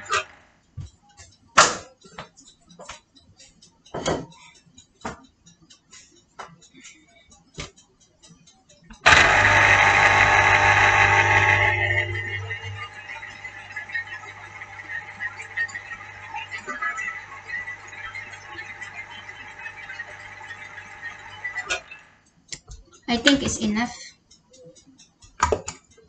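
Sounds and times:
electric citrus juicer motor humming: 0:00.0 - 0:00.4, 0:09.0 - 0:22.2.

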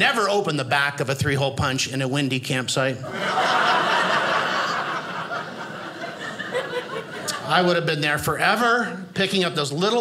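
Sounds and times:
audience laughing: 0:03.0 - 0:07.9.

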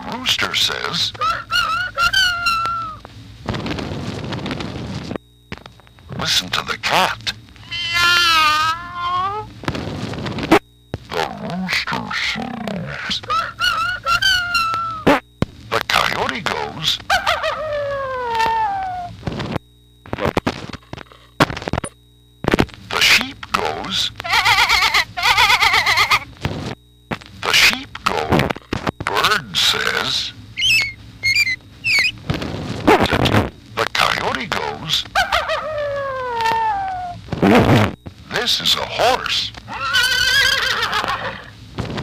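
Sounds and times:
recorded animal calls: 0:00.1 - 0:03.0, 0:06.9 - 0:09.5, 0:11.1 - 0:15.2, 0:15.8 - 0:19.1, 0:22.9 - 0:26.3, 0:29.1 - 0:32.2, 0:32.9 - 0:37.7, 0:38.3 - 0:41.6
recorded cat meow: 0:07.6 - 0:09.5, 0:35.6 - 0:37.2.

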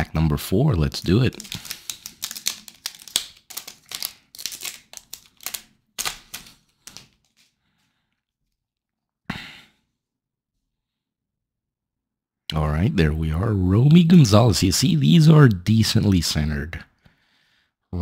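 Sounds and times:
foil wrapper crinkling and tearing: 0:00.8 - 0:07.5.

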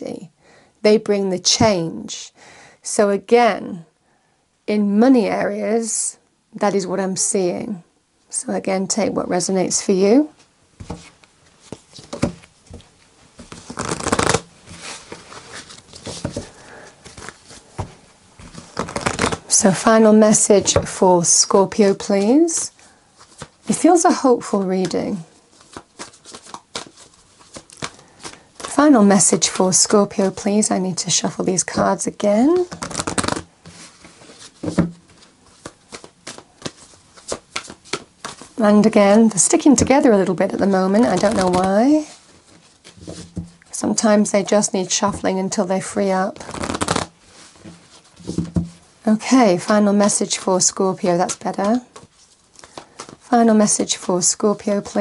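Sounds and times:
cards being shuffled by hand: 0:10.8 - 0:19.6, 0:21.7 - 0:23.8, 0:24.6 - 0:30.4, 0:31.8 - 0:43.6, 0:46.4 - 0:48.7, 0:51.0 - 0:53.2.

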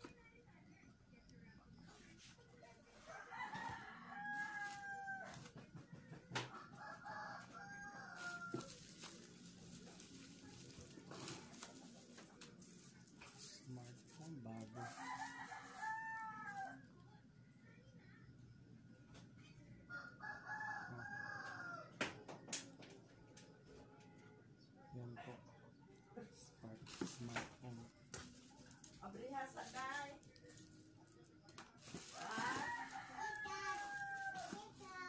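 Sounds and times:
rooster crowing: 0:03.1 - 0:05.4, 0:06.8 - 0:08.8, 0:14.8 - 0:16.8, 0:19.9 - 0:21.9, 0:32.1 - 0:35.0.

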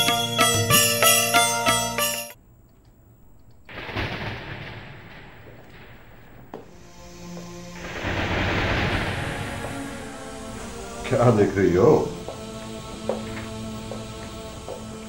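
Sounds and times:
thunderclap rumbling: 0:03.0 - 0:12.3
wind gust: 0:03.7 - 0:12.3.

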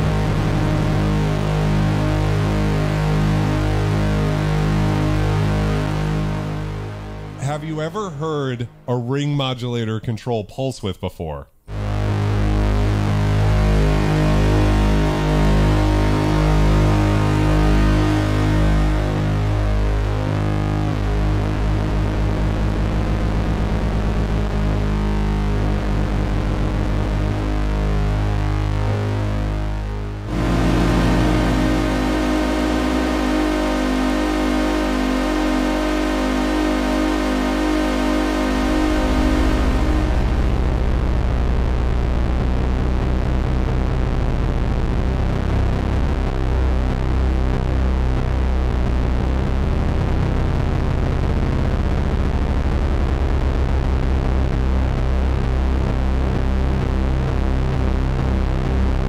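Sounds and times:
buzzing wobbling synthesizer tone: 0:00.0 - 0:07.9, 0:11.7 - 0:59.0.

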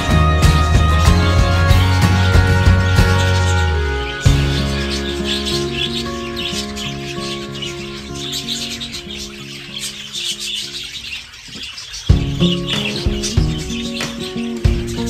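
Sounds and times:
loud beat: 0:00.0 - 0:04.9, 0:12.1 - 0:15.0
background music with bass: 0:00.0 - 0:10.9, 0:12.1 - 0:15.0
budgerigars chirping: 0:00.0 - 0:15.0.

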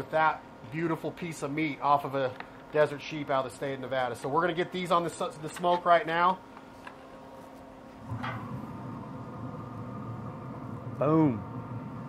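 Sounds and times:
grill fan hum: 0:00.0 - 0:12.0.

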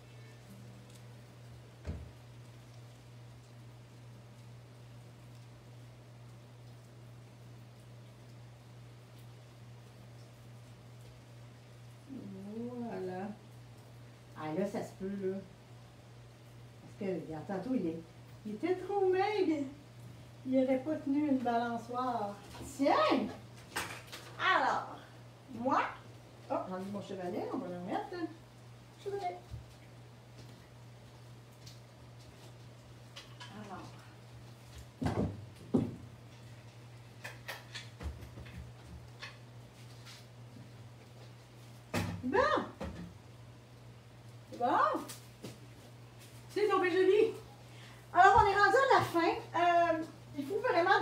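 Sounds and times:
faint low hum: 0:00.0 - 0:51.0
woman's drawn-out wordless voice: 0:24.4 - 0:25.0, 0:48.1 - 0:51.0.

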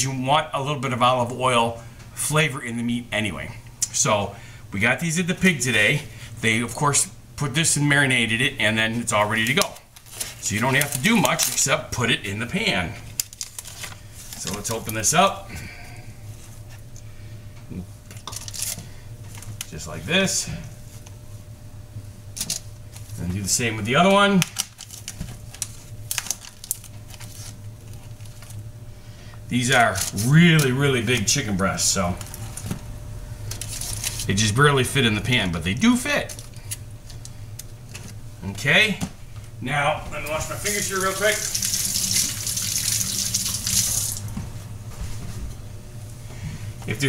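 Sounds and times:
low steady hum: 0:00.0 - 0:47.0
plastic film crinkling and tearing: 0:09.5 - 0:11.7, 0:13.1 - 0:14.9, 0:18.2 - 0:18.8, 0:24.4 - 0:28.6, 0:29.7 - 0:30.3, 0:33.5 - 0:34.3, 0:40.4 - 0:44.2
faucet running: 0:40.4 - 0:44.4.

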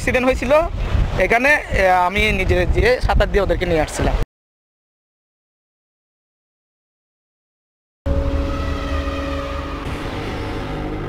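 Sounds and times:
dark music sting: 0:08.1 - 0:11.0
loud low rumble: 0:08.1 - 0:11.0.

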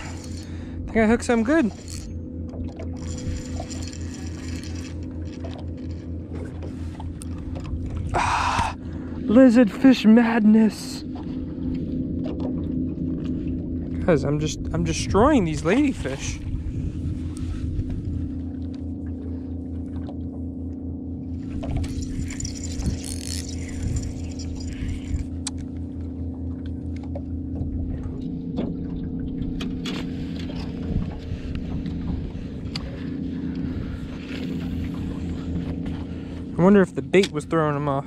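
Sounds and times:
boat motor running: 0:00.0 - 0:38.0.

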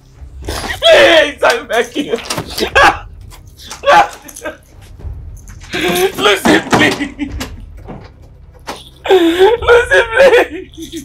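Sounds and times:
woman whimpering and sobbing: 0:09.0 - 0:11.0.

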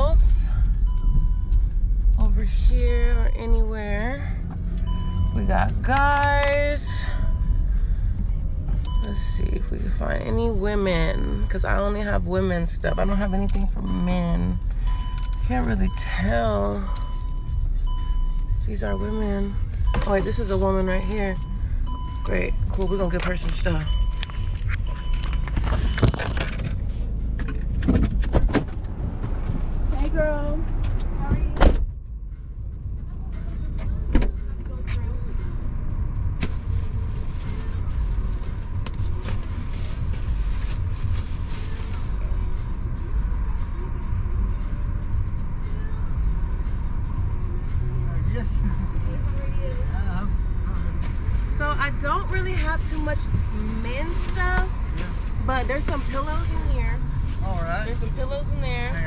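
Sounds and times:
car engine idling: 0:00.0 - 0:59.0
knocks and rustling: 0:24.5 - 0:29.6.

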